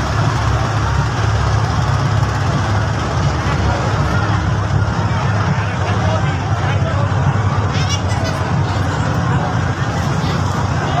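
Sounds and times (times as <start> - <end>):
motorboat engine humming: 0.0 - 11.0
water noise: 0.0 - 11.0.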